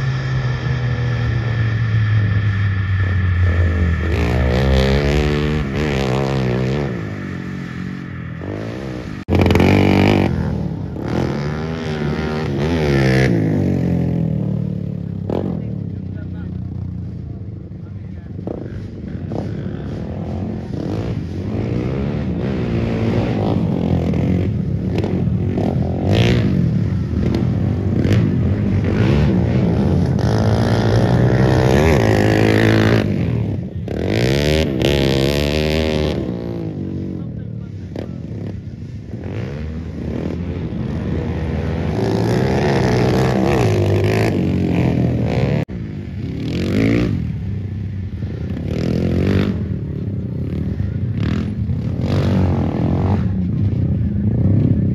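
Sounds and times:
dirt bike engines revving: 0:00.0 - 0:54.9.

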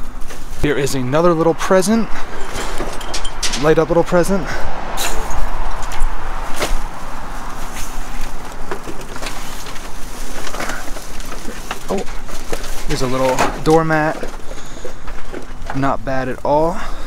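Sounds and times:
items rustling and clattering: 0:00.0 - 0:17.0.

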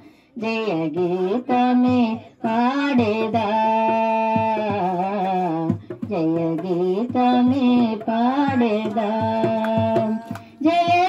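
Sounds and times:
woman singing into a microphone: 0:00.0 - 0:11.0
drum beating steadily: 0:00.8 - 0:11.0.

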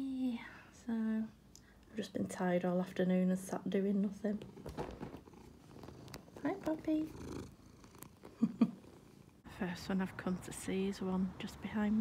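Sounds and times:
cat purring: 0:04.1 - 0:09.4.

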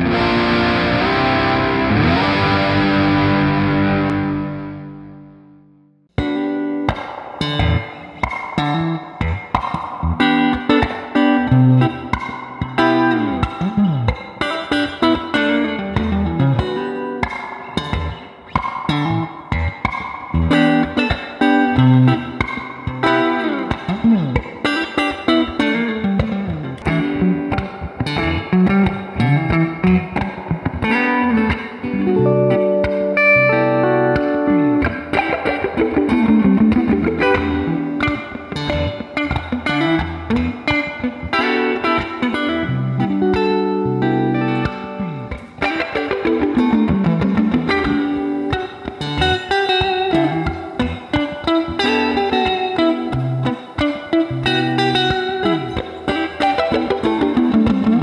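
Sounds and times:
clean electric guitar playing: 0:00.0 - 0:58.0.

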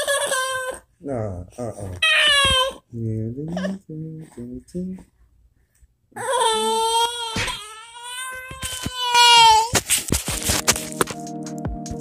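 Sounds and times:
baby crying: 0:00.0 - 0:00.9, 0:02.0 - 0:02.9, 0:06.2 - 0:09.7.

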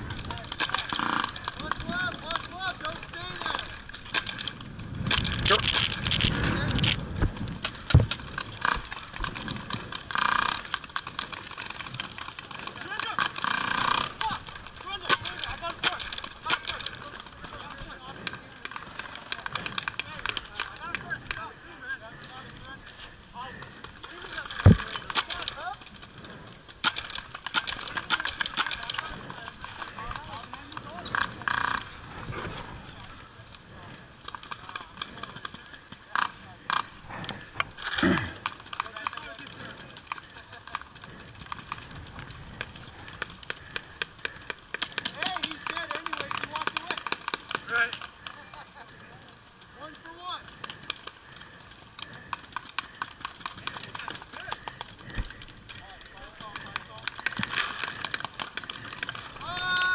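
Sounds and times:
paintball markers firing pops: 0:26.3 - 0:30.1
distant shouting: 0:58.7 - 0:59.9.

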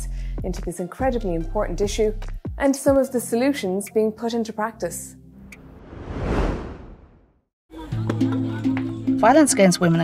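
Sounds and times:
music: 0:00.0 - 0:05.6, 0:07.7 - 0:10.0
whoosh transition effect: 0:05.5 - 0:07.3.

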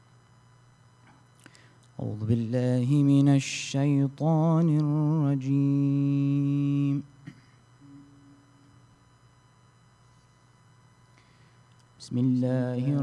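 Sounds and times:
man chanting into a microphone: 0:12.0 - 0:13.0.

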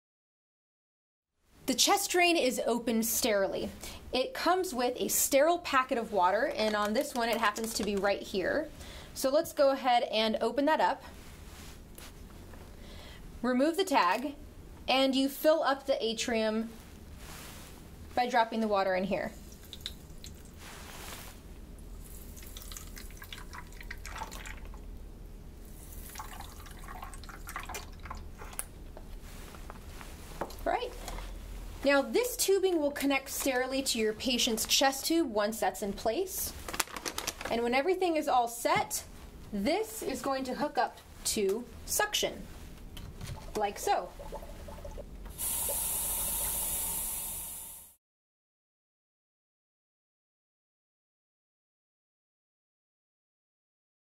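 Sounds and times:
water trickling and dripping: 0:19.4 - 0:20.6, 0:22.2 - 0:25.0, 0:26.0 - 0:28.6, 0:43.4 - 0:47.0
suction hissing through tubing: 0:44.2 - 0:48.0.

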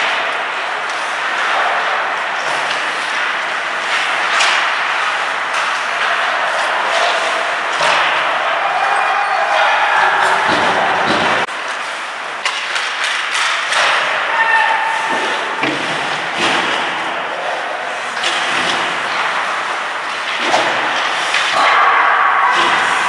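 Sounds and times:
skates scraping on ice: 0:00.0 - 0:21.8
hockey sticks knocking puck: 0:00.0 - 0:22.0
players shouting: 0:05.5 - 0:11.5, 0:13.8 - 0:15.6, 0:21.5 - 0:23.0.

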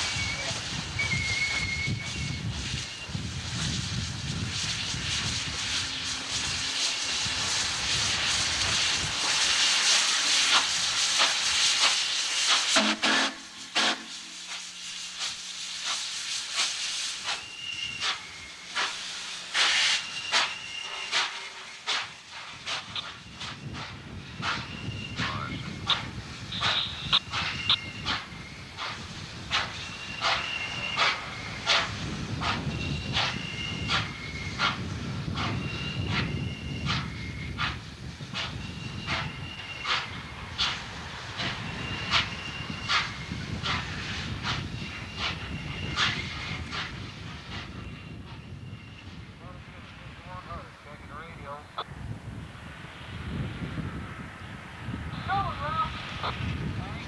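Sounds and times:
steam hissing: 0:00.0 - 0:51.6
locomotive running rumble: 0:00.0 - 0:57.0.

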